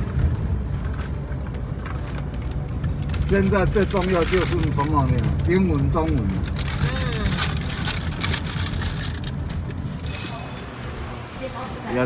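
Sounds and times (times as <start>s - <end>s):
car cabin road and engine rumble: 0.0s - 12.0s.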